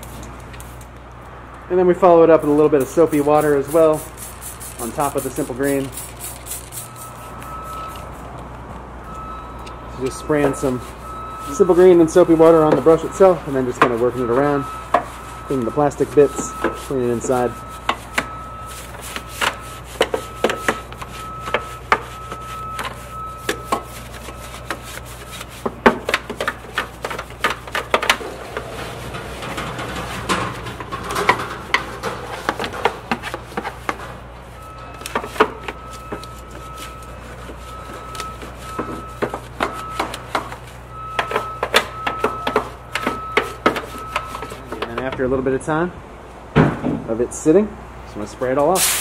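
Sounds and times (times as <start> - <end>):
brush scrubbing plastic: 2.7 - 8.2, 10.2 - 44.9
brush knocking on plastic: 18.9 - 28.7.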